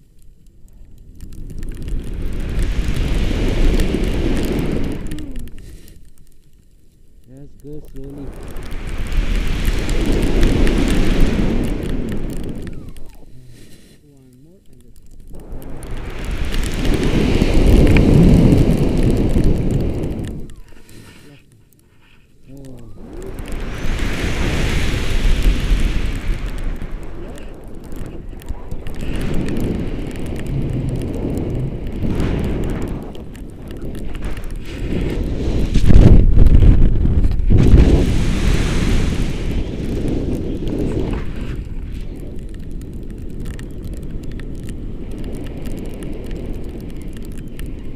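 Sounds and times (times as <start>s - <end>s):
wind buffeting microphone: 1.0s - 5.7s, 7.3s - 13.3s, 14.9s - 21.2s, 22.5s - 47.9s.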